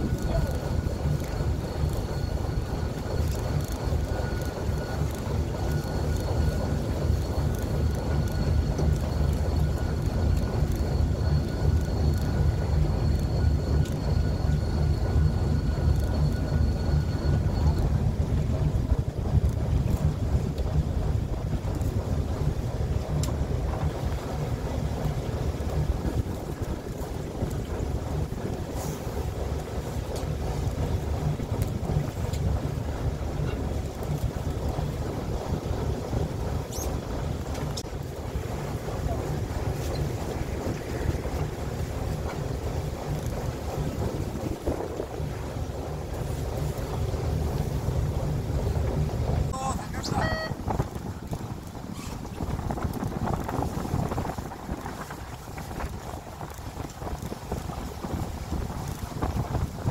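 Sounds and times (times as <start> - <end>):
wind buffeting microphone: 0.0 - 49.6, 50.5 - 59.9
boat engine rumble: 0.0 - 59.9
faint thin high tone: 49.5 - 50.6.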